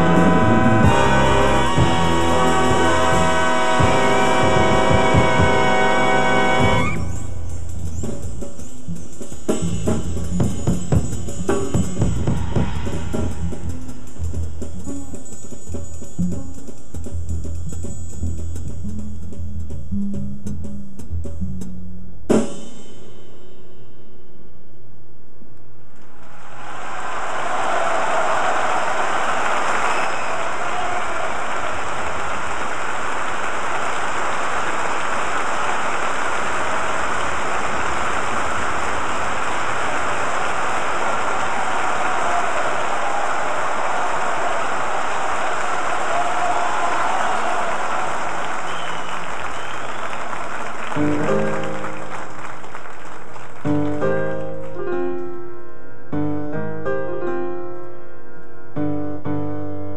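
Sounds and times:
audience applauding: 0.0s - 7.0s, 26.0s - 54.8s
piano: 32.7s - 59.9s.

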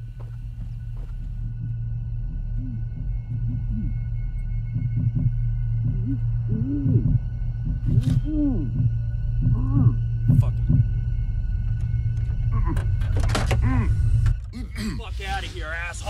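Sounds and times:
low steady drone: 0.0s - 16.0s.

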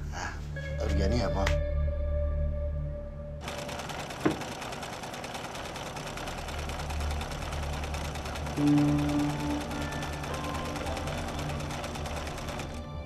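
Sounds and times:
low background music: 0.0s - 3.5s, 6.1s - 13.0s
sewing machine running: 3.4s - 13.0s.

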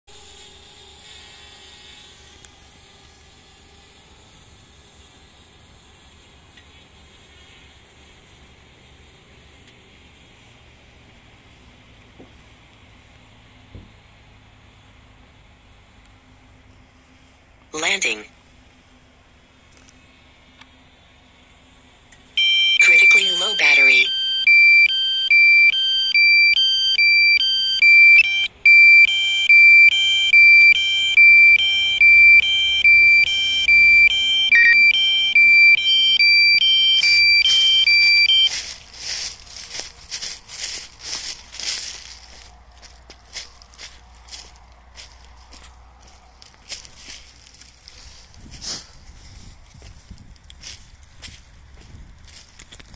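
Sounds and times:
low battery alarm tone with beeps: 22.4s - 39.3s.

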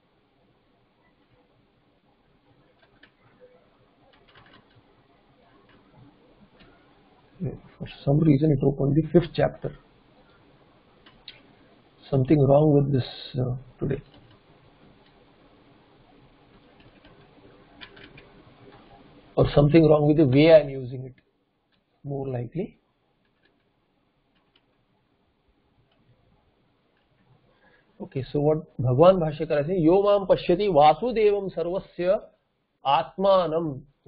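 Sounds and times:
room hiss: 0.0s - 34.0s
computer mouse clicks: 2.5s - 3.5s, 4.1s - 6.9s, 14.0s - 15.2s, 16.2s - 19.0s, 24.3s - 24.8s
computer mouse click: 14.0s - 14.4s, 16.5s - 18.9s, 24.3s - 24.7s.

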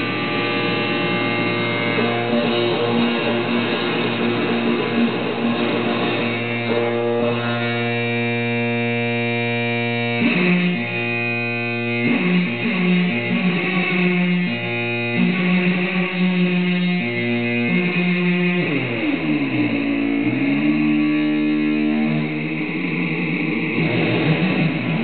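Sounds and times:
guitar held chords: 0.0s - 25.0s.

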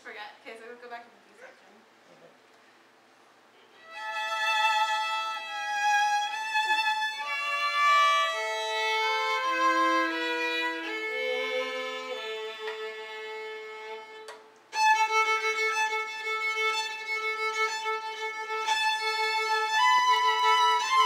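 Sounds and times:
violins playing slow duet: 3.8s - 21.0s.

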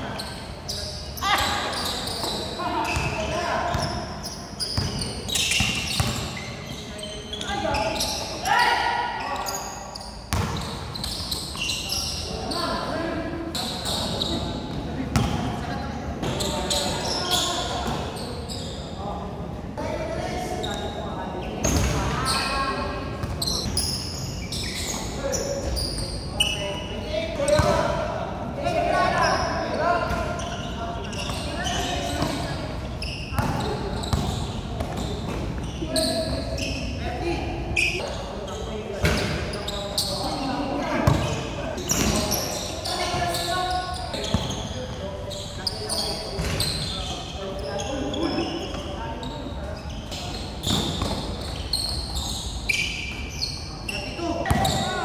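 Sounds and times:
basketball bouncing on court: 4.8s - 6.4s, 10.3s - 11.2s, 15.1s - 15.4s, 27.5s - 27.8s, 33.4s - 35.4s, 41.0s - 42.3s, 44.3s - 44.6s.

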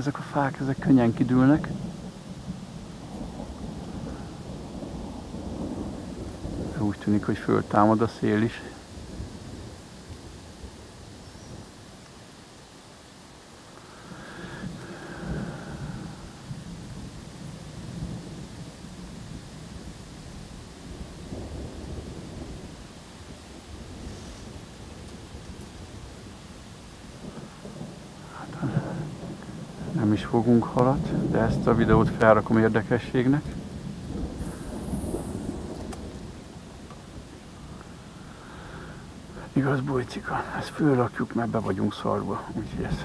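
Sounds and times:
storm wind gusting: 0.0s - 11.7s, 14.1s - 43.0s
low rumble: 29.8s - 37.9s.

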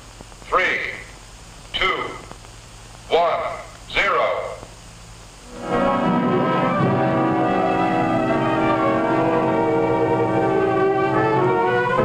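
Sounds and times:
sustained orchestral brass chord: 5.5s - 12.0s.

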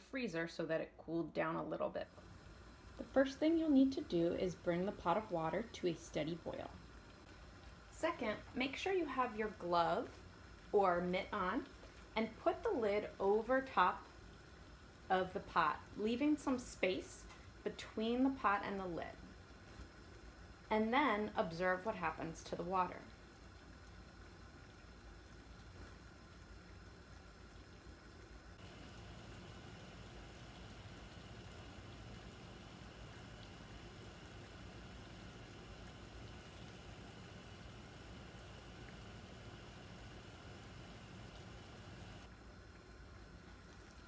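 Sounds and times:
water bubbling at a boil: 1.2s - 44.0s.

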